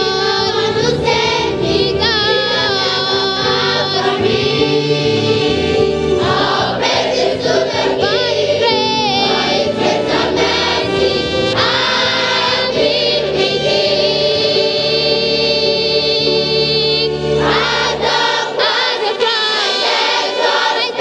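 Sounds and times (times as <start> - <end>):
woman singing lead: 0.0 - 1.1, 1.8 - 5.0, 7.9 - 9.7
children's choir singing: 0.0 - 21.0
violin and ensemble accompaniment: 0.0 - 21.0.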